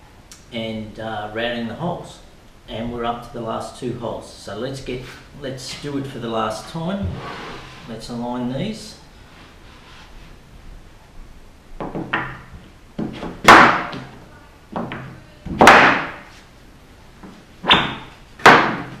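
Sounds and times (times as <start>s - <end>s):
wooden board scraping thunks: 6.9s - 7.9s.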